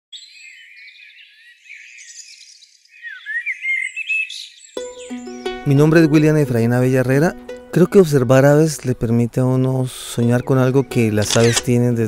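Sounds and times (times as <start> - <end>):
birds chirping and whistling: 0.1 - 6.0, 9.9 - 11.9.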